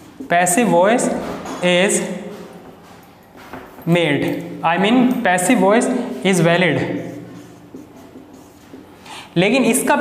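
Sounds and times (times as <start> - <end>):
marker scratching on whiteboard: 6.3 - 9.9.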